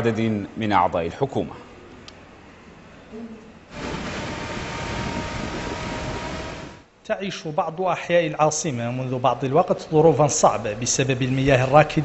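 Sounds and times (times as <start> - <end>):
steady outdoor rush: 3.7 - 6.9.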